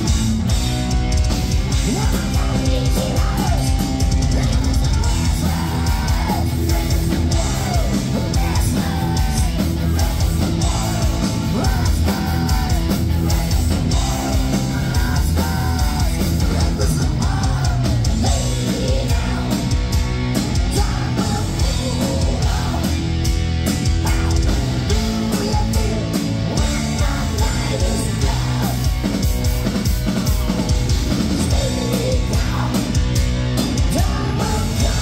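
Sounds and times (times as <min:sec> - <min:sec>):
bass guitar: 0:00.0 - 0:35.0
distorted electric guitars: 0:00.0 - 0:35.0
drums: 0:00.0 - 0:35.0
person singing: 0:01.8 - 0:19.8, 0:24.0 - 0:29.0.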